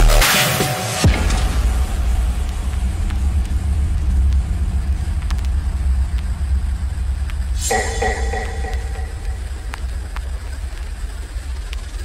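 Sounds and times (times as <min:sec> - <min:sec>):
high synth tone: 0:07.6 - 0:09.8.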